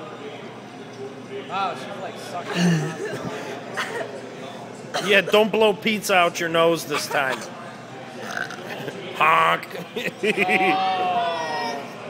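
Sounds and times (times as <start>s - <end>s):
restaurant background chatter: 0.0s - 12.0s.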